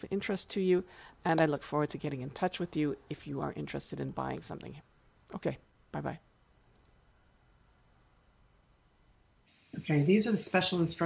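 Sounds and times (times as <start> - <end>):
faint quick clicks: 6.7 - 7.0.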